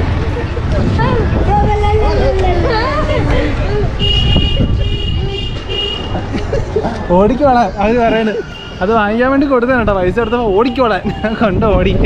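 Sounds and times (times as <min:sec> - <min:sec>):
street traffic rumble: 0:00.0 - 0:12.0
voices: 0:00.0 - 0:12.0
vehicle horn tooting: 0:04.0 - 0:06.1, 0:08.1 - 0:09.4, 0:10.1 - 0:11.6.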